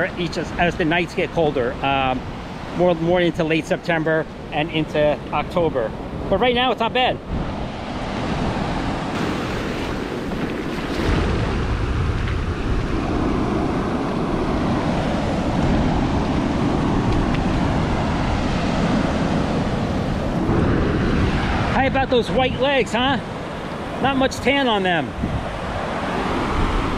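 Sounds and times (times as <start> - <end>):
ocean surf washing in: 0.0 - 26.9
wind buffeting microphone: 4.1 - 26.9.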